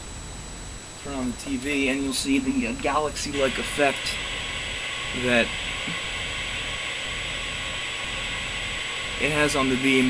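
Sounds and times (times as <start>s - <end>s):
static hiss: 0.0s - 10.0s
high steady tone: 1.0s - 10.0s.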